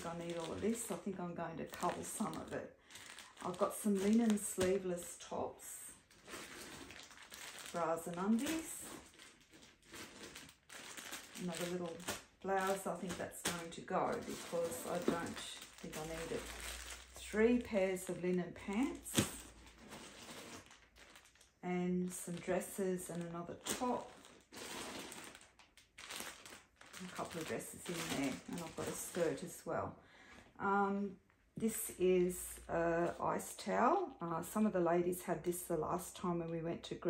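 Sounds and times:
plastic bags crinkling: 0.0 - 29.7.

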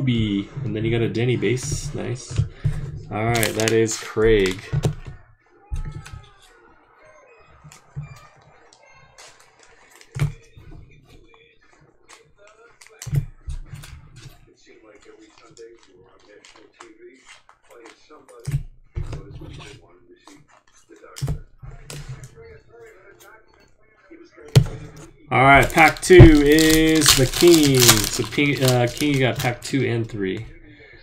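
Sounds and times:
trading cards handled on table: 2.7 - 5.1, 25.4 - 29.9.

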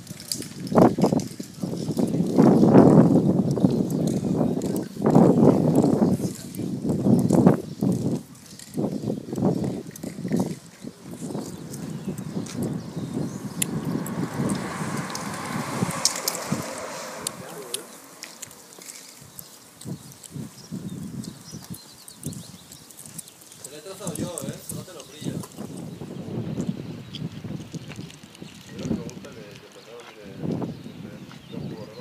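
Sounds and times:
footsteps on paved street: 0.0 - 32.0
indistinct voices: 10.0 - 19.2.

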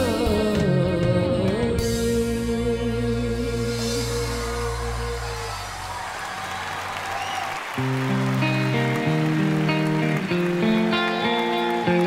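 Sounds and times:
live band playing chords: 0.0 - 6.6, 7.7 - 12.0.

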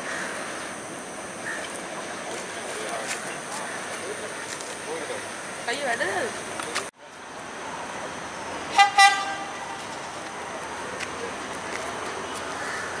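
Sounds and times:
trains running: 0.0 - 13.0
train horn double toot: 8.7 - 9.8.

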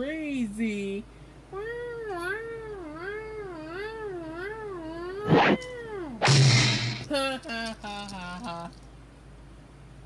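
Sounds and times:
wavering cat-like yowl: 1.6 - 6.3.

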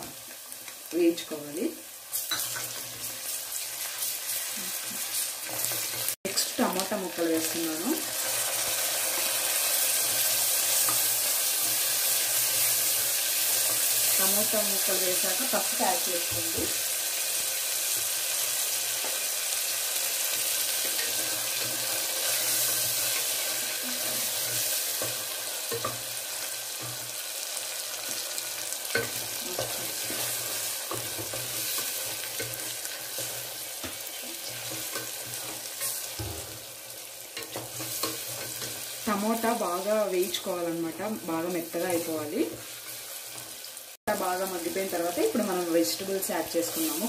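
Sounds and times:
vegetables sizzling in hot oil: 0.0 - 47.0.

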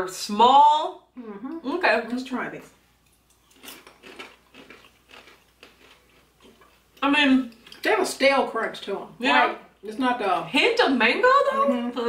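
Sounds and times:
crunchy chips being chewed: 3.0 - 7.0.

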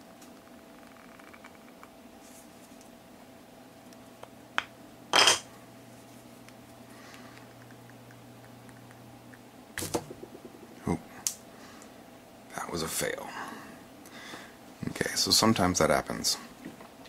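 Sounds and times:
faint steady hum: 0.0 - 17.0
sharp knocks: 9.8 - 11.0.

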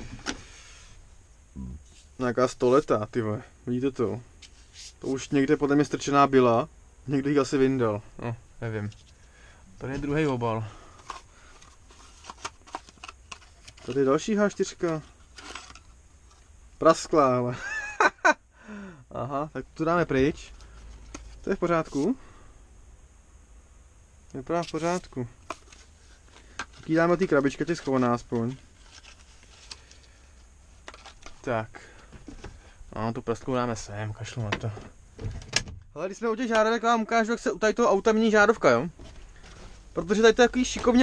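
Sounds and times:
handling small box: 9.9 - 16.5, 24.6 - 32.6
small clicks and paper rustles: 10.2 - 16.5, 24.6 - 31.5.

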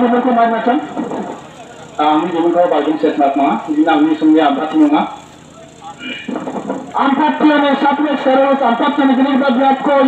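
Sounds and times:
man speaking through loudspeaker: 0.0 - 6.3, 7.0 - 10.0.

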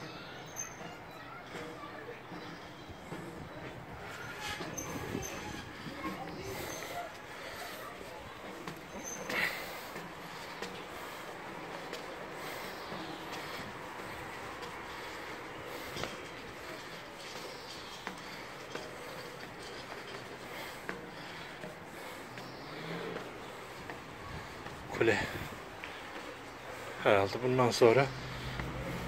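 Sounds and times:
footsteps on metal stairs: 0.0 - 29.0.

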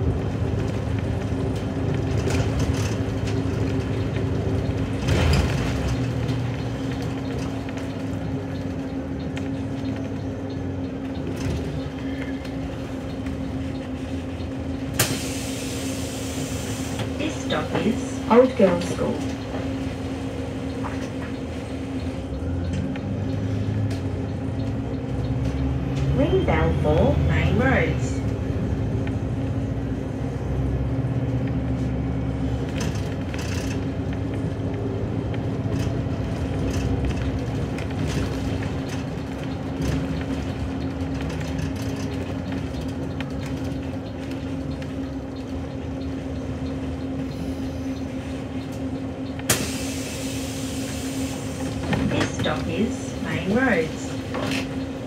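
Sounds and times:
bus engine and road rumble: 0.0 - 55.0.

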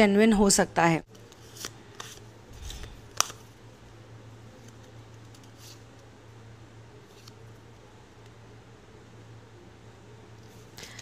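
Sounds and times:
low steady hum: 0.0 - 11.0
cards clicking and rustling: 1.1 - 3.5, 4.6 - 6.1.

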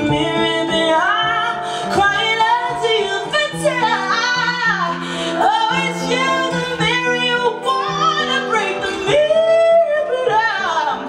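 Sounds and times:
acoustic guitar chords: 0.0 - 11.0
woman singing: 0.0 - 11.0.

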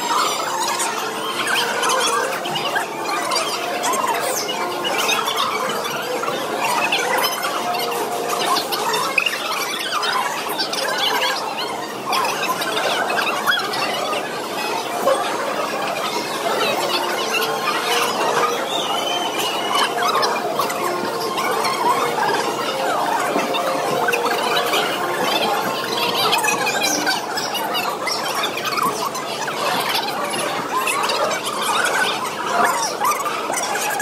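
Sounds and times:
sped-up squeaky voices chattering: 0.0 - 34.0.

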